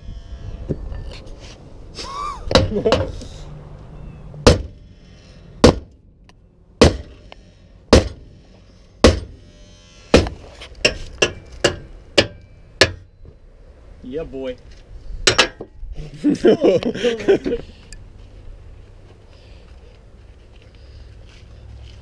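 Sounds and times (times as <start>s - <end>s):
sledgehammer striking steel: 4.4s - 4.8s, 5.6s - 6.0s, 6.8s - 7.3s, 7.9s - 8.4s, 9.0s - 13.1s.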